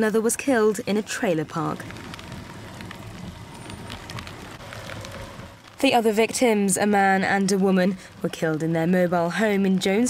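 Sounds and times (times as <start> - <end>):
light rain falling: 0.0 - 10.0
low rumble: 1.2 - 8.3.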